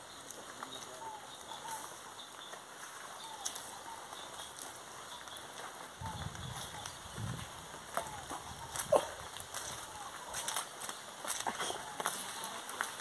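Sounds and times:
light rain hiss: 0.0s - 13.0s.

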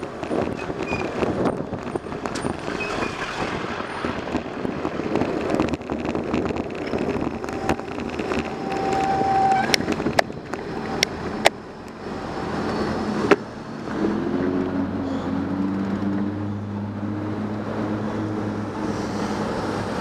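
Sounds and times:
motor vehicles running: 0.0s - 20.0s
wind noise: 0.0s - 20.0s
bicycle brake squeal: 0.6s - 1.2s, 8.5s - 9.8s.

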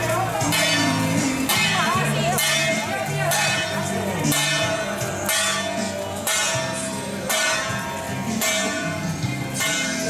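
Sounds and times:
music: 0.0s - 10.0s.

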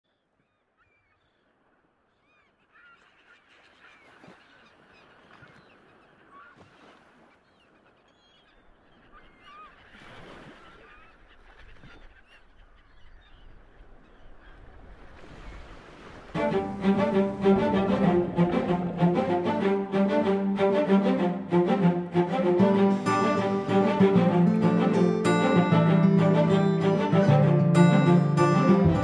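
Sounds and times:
seabirds calling: 0.4s - 29.0s
surf wash: 14.4s - 29.0s.

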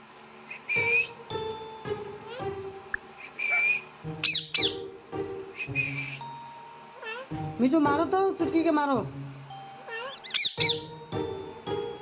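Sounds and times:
background music: 0.8s - 12.0s
parakeet squawks: 3.2s - 4.8s, 9.9s - 10.9s.

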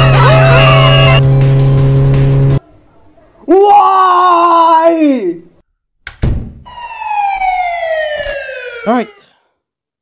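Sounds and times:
cartoon car engine hum: 0.0s - 2.6s.

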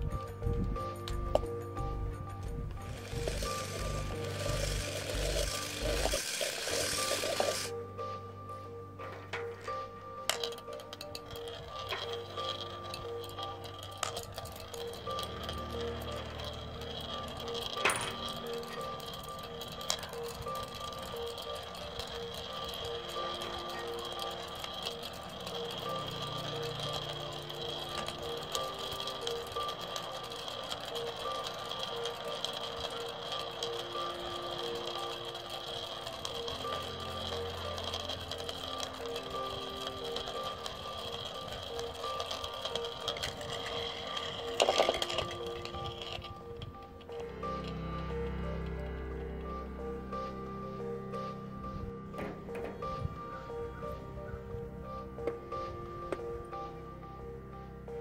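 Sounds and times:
spinning top whirring and rattling: 0.0s - 7.8s, 9.1s - 58.0s.

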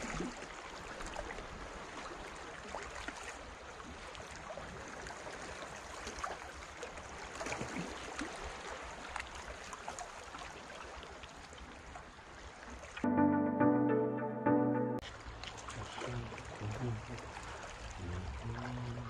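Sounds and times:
small water splashes: 0.0s - 12.9s, 15.2s - 19.0s.

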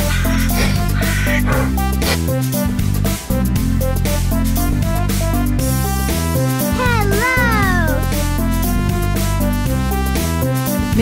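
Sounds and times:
electronic music with beat: 0.0s - 2.3s.

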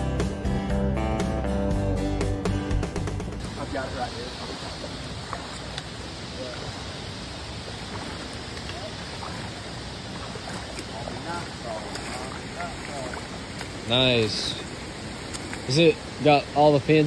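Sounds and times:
creek running over stones: 3.4s - 17.0s.

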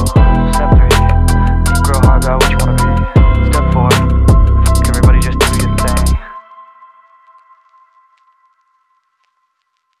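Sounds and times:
hip-hop beat: 0.0s - 9.3s.

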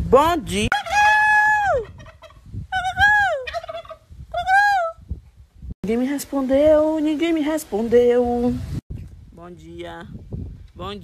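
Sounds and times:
turkey gobbling: 0.7s - 2.4s, 3.4s - 4.6s.

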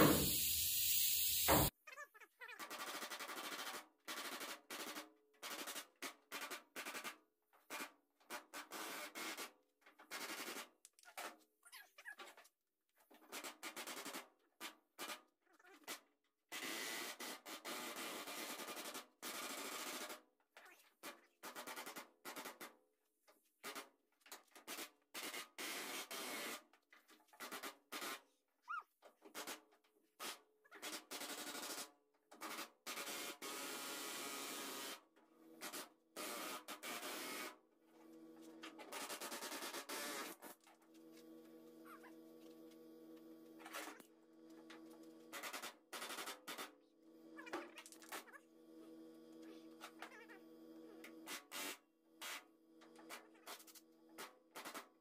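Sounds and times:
pneumatic air hammer bursts: 0.0s - 1.7s, 51.2s - 52.5s.

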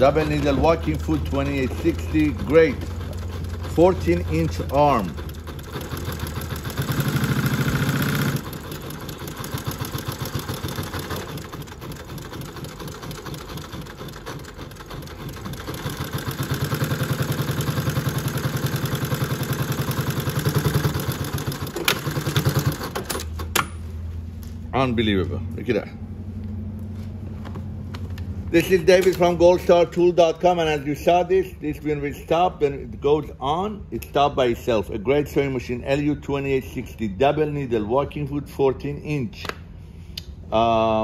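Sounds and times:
sewing machine stitching: 0.0s - 23.5s.

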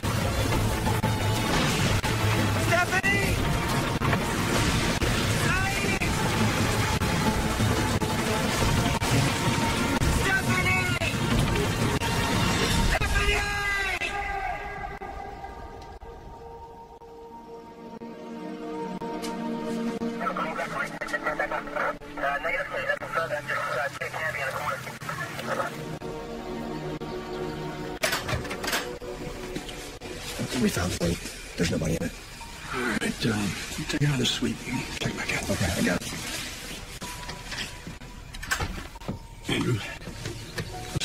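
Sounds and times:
rain and wind: 0.0s - 14.2s, 28.2s - 41.0s
background score music: 0.0s - 41.0s
tinny voice over police radio: 20.2s - 25.8s.

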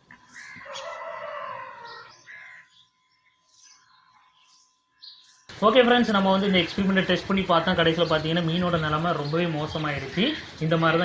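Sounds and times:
rooster crowing: 0.3s - 2.8s.

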